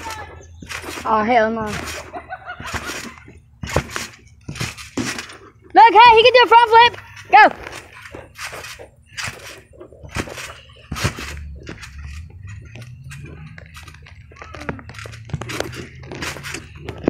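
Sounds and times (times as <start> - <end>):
trampoline thumps and springs: 0.0 - 17.0.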